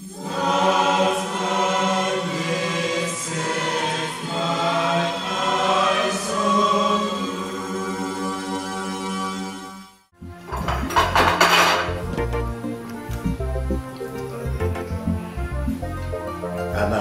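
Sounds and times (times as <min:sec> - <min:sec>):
choir chanting: 0:00.0 - 0:09.8.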